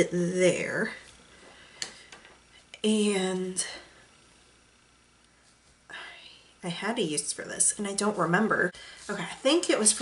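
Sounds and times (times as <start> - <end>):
woman speaking: 0.0 - 1.0, 2.8 - 3.9, 6.0 - 10.0.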